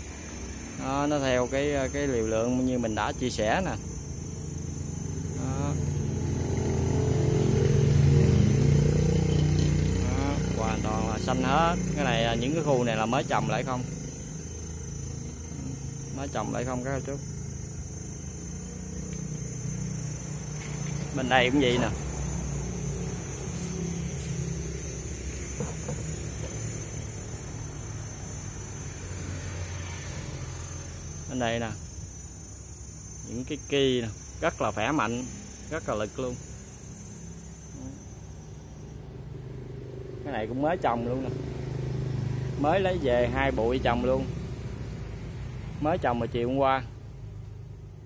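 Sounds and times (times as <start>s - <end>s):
insects droning: 0.0s - 48.0s
vehicle engine passing by: 3.7s - 32.0s, 38.9s - 46.1s.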